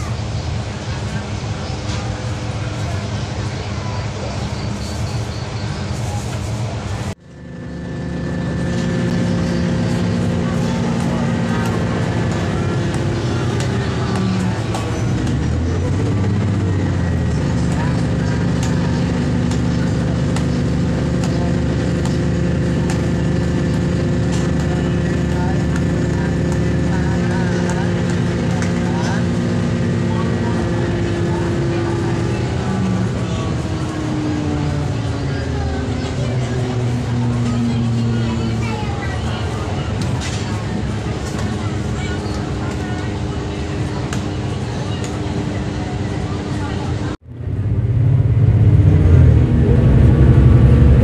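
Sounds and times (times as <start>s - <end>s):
diesel railcar engine droning: 0.0s - 51.0s.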